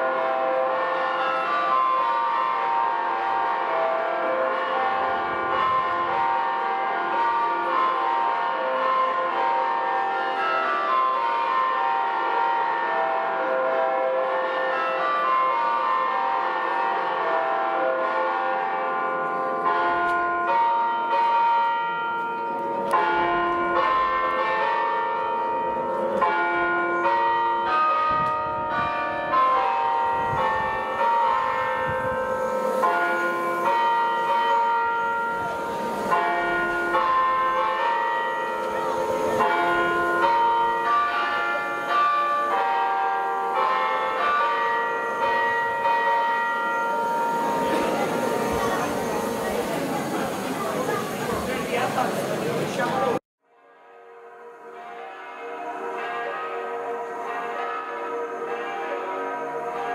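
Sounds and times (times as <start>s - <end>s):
church bells pealing: 0.0s - 59.9s.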